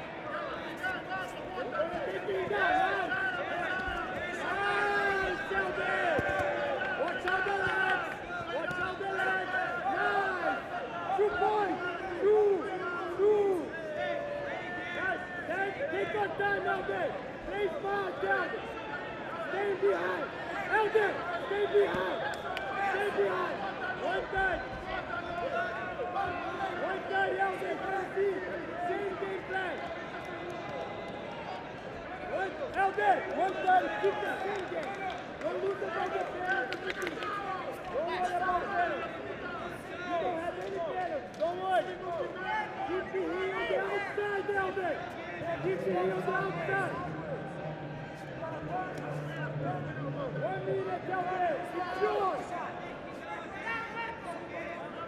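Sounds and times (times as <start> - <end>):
crowd talking and shouting: 0.0 - 55.0.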